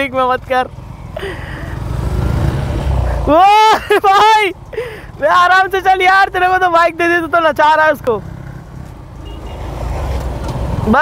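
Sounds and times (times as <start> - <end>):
motorcycle engine rumble: 0.0 - 11.0.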